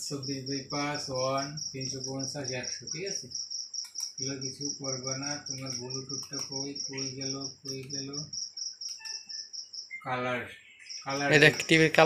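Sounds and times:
cricket chirping: 0.0 - 12.0
man's voice: 11.1 - 12.0.

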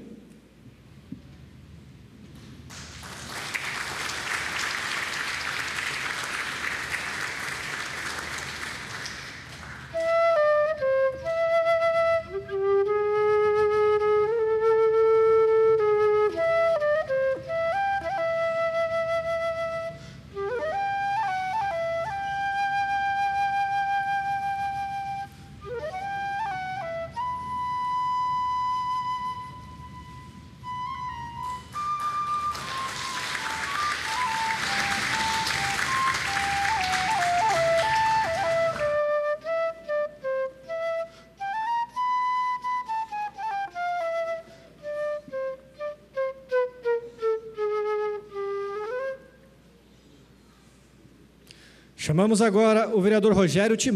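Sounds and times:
applause: 2.4 - 10.2, 31.4 - 39.0
flute melody background music: 9.6 - 49.8.

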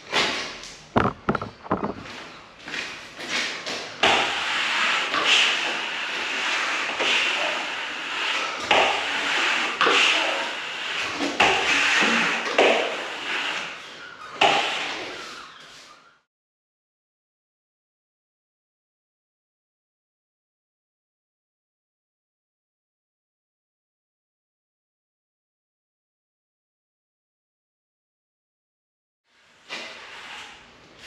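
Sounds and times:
sharp knocks: 1.0 - 2.1
trowel scraping plaster: 1.3 - 16.0, 29.6 - 31.0.

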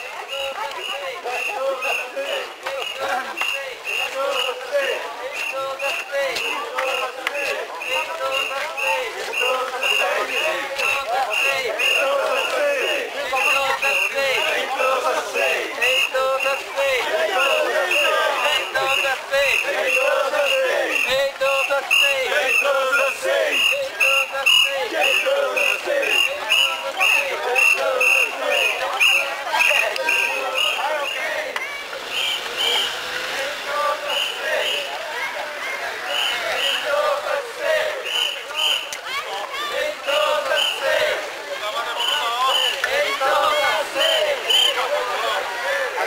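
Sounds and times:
crowd chanting in rhythm: 0.0 - 46.0
people shouting: 0.0 - 46.0.

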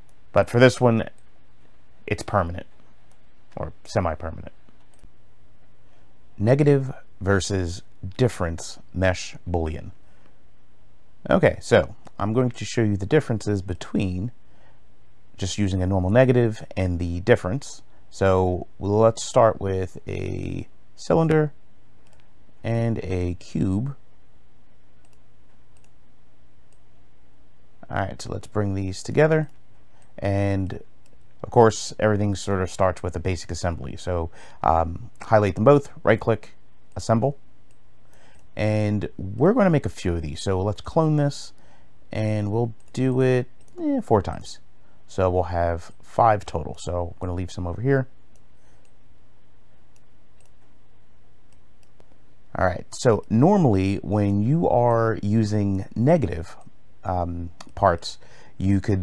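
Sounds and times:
low electrical hum: 0.0 - 59.0
faint computer mouse clicks: 4.7 - 5.1, 22.0 - 22.3, 25.0 - 26.0, 49.9 - 50.7.

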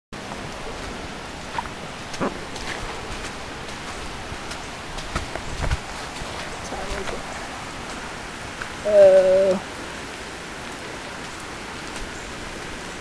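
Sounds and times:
steady rain: 0.2 - 13.0.

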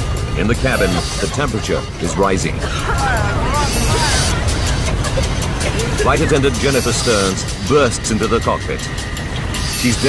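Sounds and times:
jet airliner cabin rumble: 0.0 - 10.0.

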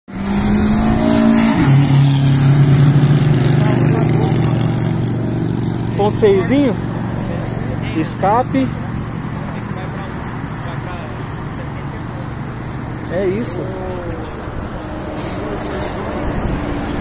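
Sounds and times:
car engine revving high: 0.1 - 8.8.

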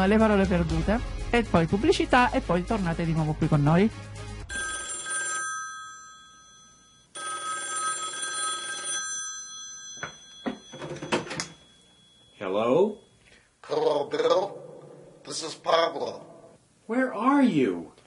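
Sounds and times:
telephone ringing: 4.5 - 13.3.

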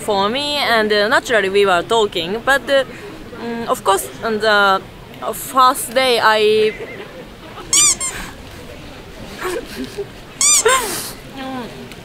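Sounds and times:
high-pitched squeaks: 6.6 - 8.3, 10.4 - 10.8
soft laughter: 6.6 - 11.0.

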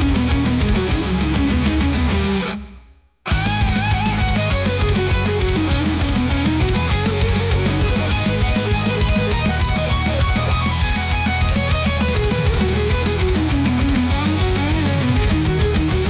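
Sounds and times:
electric guitar solo: 0.0 - 2.7, 3.3 - 16.0
drums: 0.0 - 16.0
steady bass: 0.0 - 16.0.

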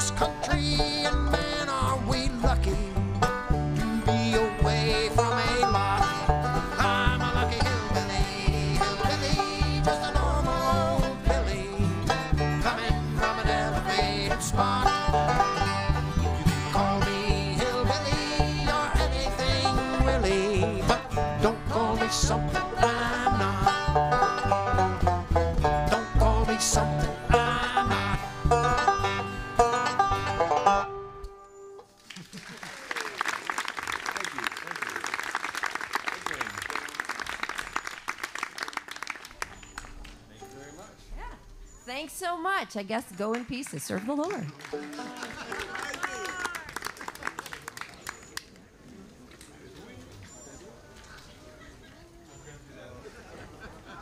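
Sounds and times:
bluegrass band playing: 0.0 - 31.5, 38.7 - 46.8
audience applause: 32.0 - 40.2, 43.1 - 48.6.

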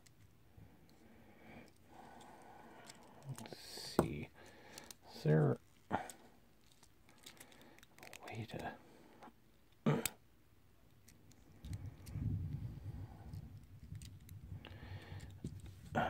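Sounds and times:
plastic toy parts clicking: 2.8 - 3.6, 4.7 - 5.0, 6.6 - 8.6, 10.9 - 12.2, 13.3 - 14.4
low rumble: 11.8 - 14.7.

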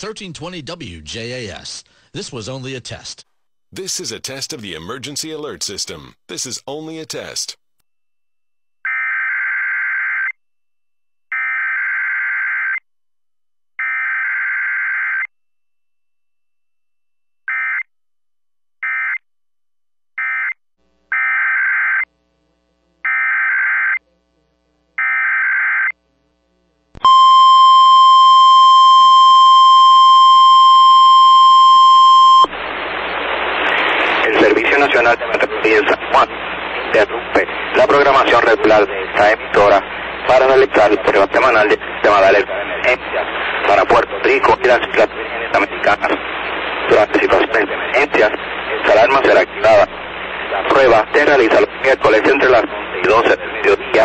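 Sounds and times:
voice through radio static: 3.8 - 7.6, 32.5 - 54.0.

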